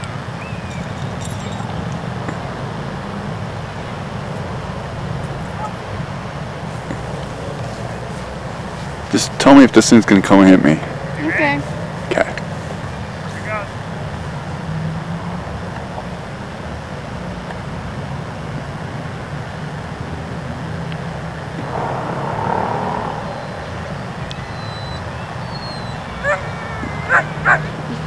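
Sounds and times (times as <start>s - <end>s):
outdoor noise: 0.0s - 28.0s
steady low hum: 21.1s - 25.2s
short rush of noise: 21.6s - 25.3s.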